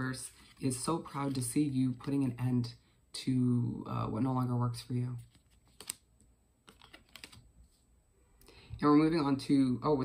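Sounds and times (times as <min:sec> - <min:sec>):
cards clicking and tapping: 0:05.3 - 0:07.4.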